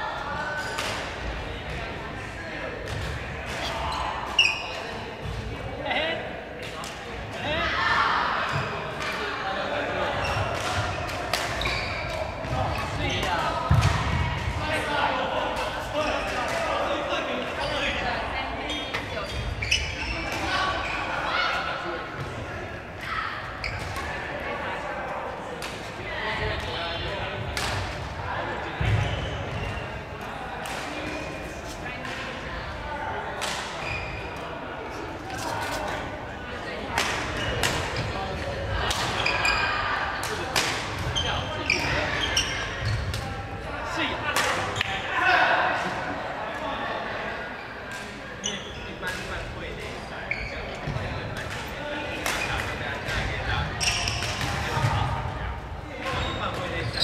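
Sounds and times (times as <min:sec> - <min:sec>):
players talking and calling: 0:00.0 - 0:57.0.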